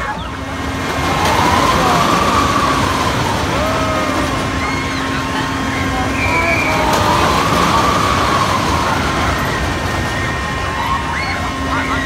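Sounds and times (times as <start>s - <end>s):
fairground ride rushing: 0.0s - 12.0s
ride whine rising and falling: 0.0s - 12.0s.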